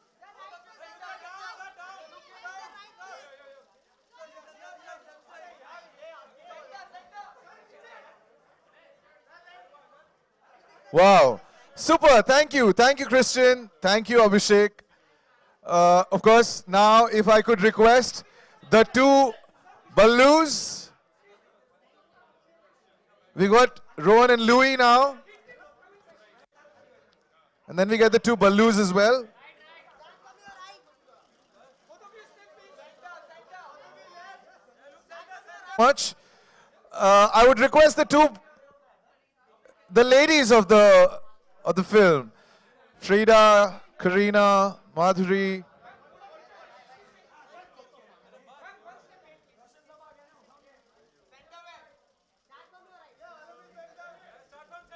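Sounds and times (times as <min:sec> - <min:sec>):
faint chatter of voices: 0:00.0 - 0:11.8, 0:20.8 - 0:23.9, 0:25.2 - 0:27.7, 0:29.3 - 0:37.0, 0:45.6 - 0:54.9
man speaking loudly: 0:10.9 - 0:14.8, 0:15.7 - 0:20.9, 0:23.4 - 0:25.3, 0:27.7 - 0:29.3, 0:35.8 - 0:36.2, 0:36.9 - 0:38.4, 0:39.9 - 0:42.3, 0:43.0 - 0:45.7.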